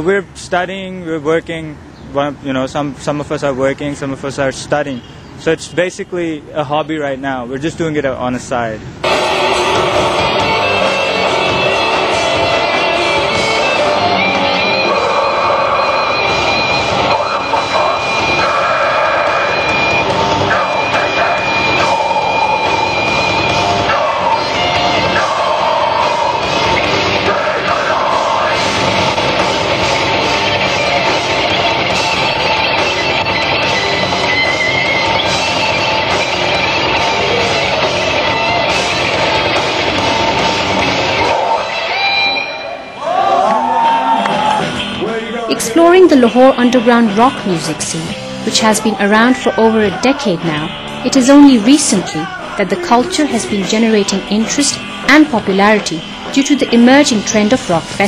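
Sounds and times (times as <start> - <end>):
electric guitar: 9.0 - 45.8
drums: 9.0 - 58.0.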